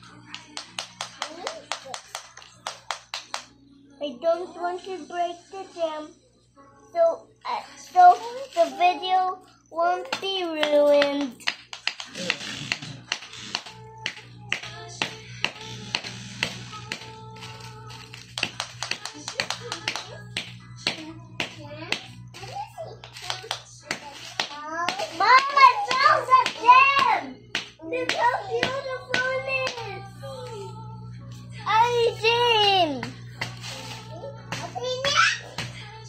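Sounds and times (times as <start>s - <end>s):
child's sing-song voice: 0.0s - 12.0s, 13.0s - 36.0s.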